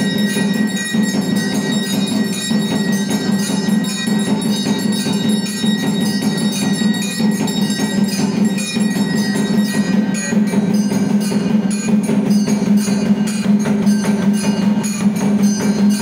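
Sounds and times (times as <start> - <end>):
brass hand bell ringing: 0.0 - 16.0
percussion: 0.0 - 16.0.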